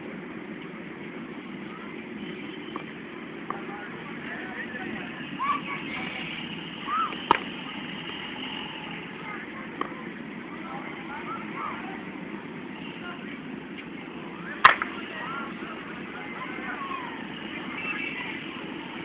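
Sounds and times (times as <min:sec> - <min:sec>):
cricket bat striking ball: 0:07.2 - 0:07.6, 0:14.6 - 0:15.0.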